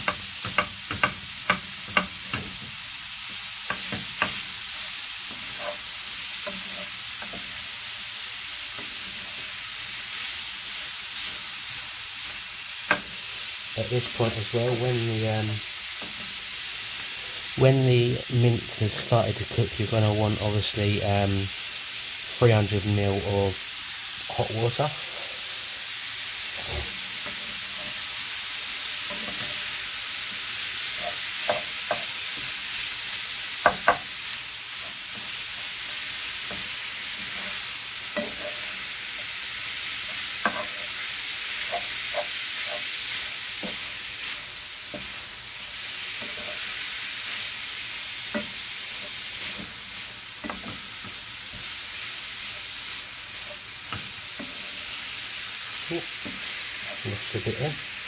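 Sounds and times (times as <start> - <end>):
wooden spatula knocking and scraping pan: 0.0 - 2.7, 3.6 - 7.6, 30.8 - 32.6, 33.6 - 34.2, 34.8 - 39.4, 40.0 - 45.2, 50.4 - 51.7
meat sizzling in a frying pan: 0.0 - 58.0.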